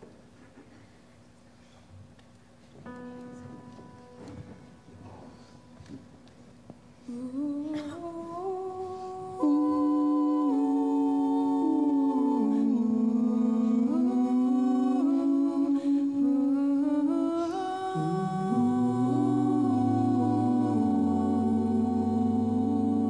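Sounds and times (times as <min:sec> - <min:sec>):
vocal ensemble singing held chords: 0:07.0 - 0:23.0.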